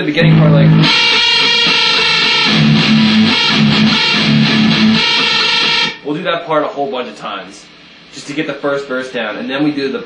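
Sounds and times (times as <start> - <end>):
electric guitar riff: 0.0 - 6.0.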